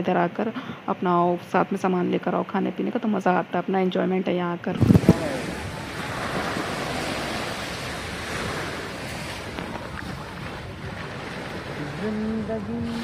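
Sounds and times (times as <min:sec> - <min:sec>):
waves breaking on sandy beach: 0:04.8 - 0:13.0
wind on microphone: 0:04.8 - 0:13.0.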